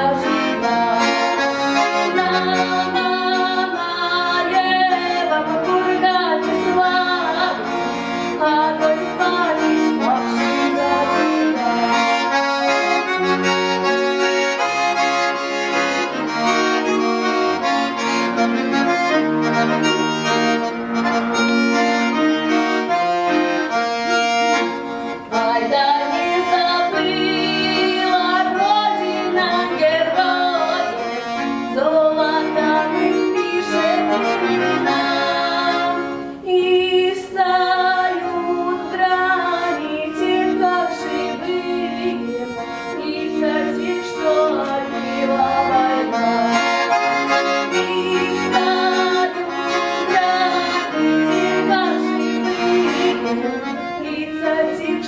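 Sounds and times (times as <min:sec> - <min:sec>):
button accordion playing chords: 0:00.0 - 0:55.0
girl singing: 0:34.9 - 0:46.4, 0:51.5 - 0:55.0.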